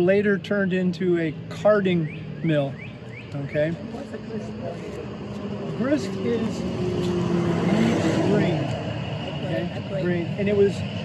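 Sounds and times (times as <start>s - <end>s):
pickup truck driving past: 2.1s - 11.0s.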